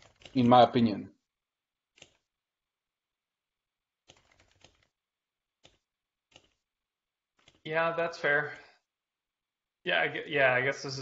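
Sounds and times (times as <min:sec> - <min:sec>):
computer keyboard typing: 0:00.0 - 0:00.8, 0:01.9 - 0:02.3, 0:04.0 - 0:05.0, 0:05.6 - 0:06.7, 0:07.3 - 0:08.6.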